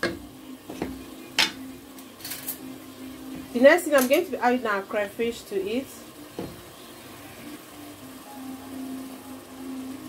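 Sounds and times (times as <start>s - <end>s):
sauce sizzling in a pot: 0.0s - 10.0s
knock: 6.4s - 6.6s.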